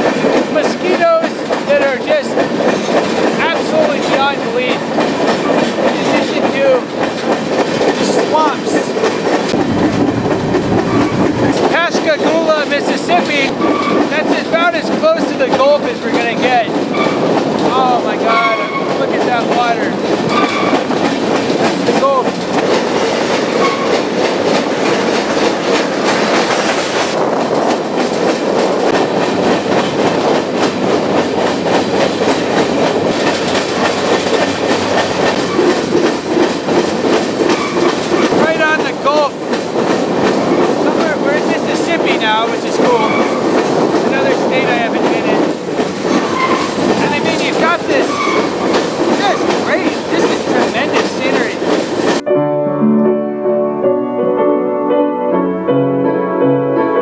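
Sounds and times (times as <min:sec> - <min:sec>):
train wheels rumbling on rail: 0:00.0 - 0:52.3
high wheel squeals: 0:37.5 - 0:38.0, 0:46.2 - 0:47.2, 0:48.0 - 0:48.7.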